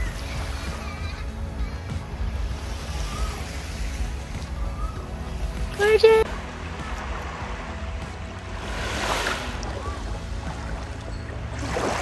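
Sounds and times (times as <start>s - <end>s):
background music: 0.0s - 12.0s
small waves washing on sand: 0.0s - 12.0s.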